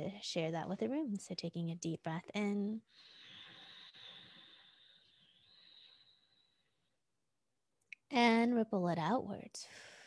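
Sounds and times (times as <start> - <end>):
deep breath in: 2.9 - 6.7.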